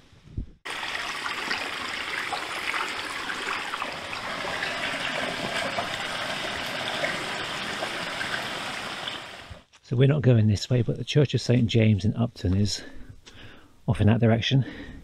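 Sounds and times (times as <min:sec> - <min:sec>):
stream trickling over stones: 0:00.7 - 0:09.6.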